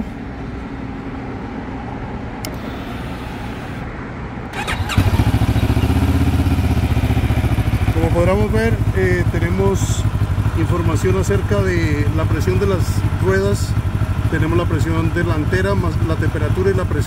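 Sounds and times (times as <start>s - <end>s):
motorcycle engine idling: 4.5s - 17.0s
starter motor cranking: 4.6s - 5.5s.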